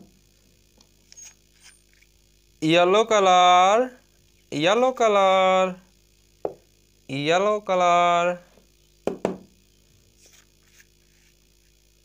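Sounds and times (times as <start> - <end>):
bottle caps knocking on table: 9.1 - 9.5.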